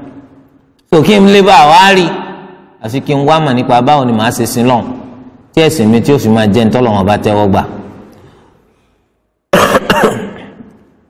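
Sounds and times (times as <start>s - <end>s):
man coughing: 9.5s - 10.7s.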